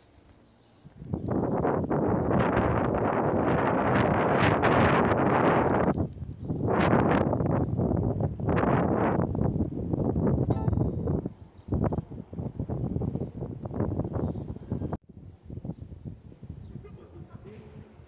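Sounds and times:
wind buffeting microphone: 0.8 - 18.0.

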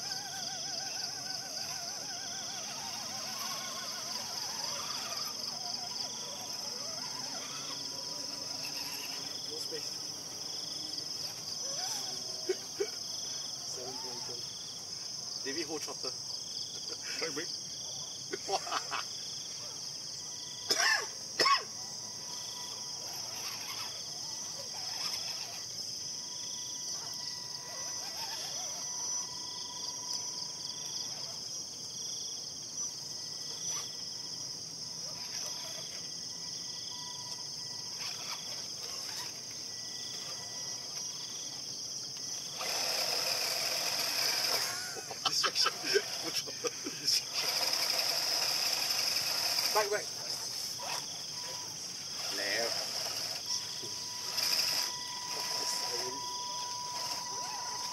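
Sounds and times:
high insect chorus: 0.0 - 57.9.

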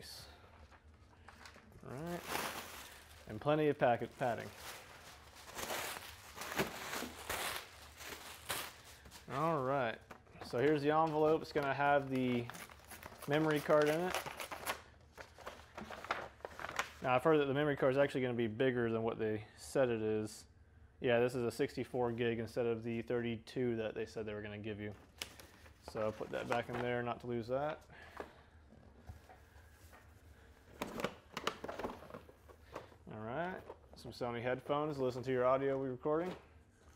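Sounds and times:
paper envelope crinkling: 0.5 - 9.5, 10.6 - 17.0, 25.0 - 27.0.

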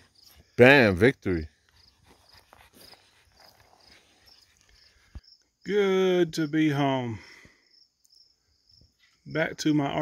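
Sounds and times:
faint cricket chirps: 0.0 - 10.0
faint scuffs: 1.6 - 5.2.

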